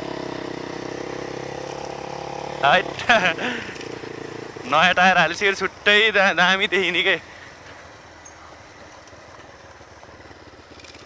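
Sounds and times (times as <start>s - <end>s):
dirt bike engine running: 0.0s - 11.0s.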